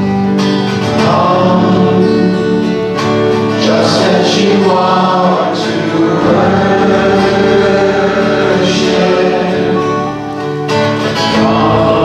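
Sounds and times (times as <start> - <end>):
congregation singing a hymn: 0.0 - 12.0
strummed acoustic guitars: 0.0 - 12.0.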